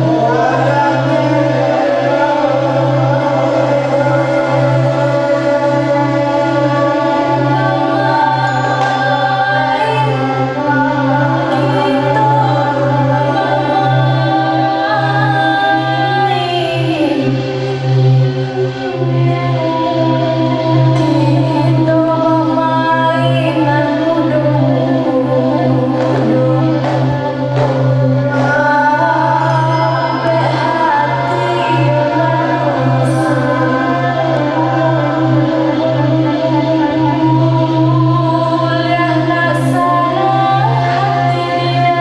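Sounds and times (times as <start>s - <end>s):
group singing long held notes: 0.0s - 42.0s
voices chanting a song together: 0.0s - 42.0s.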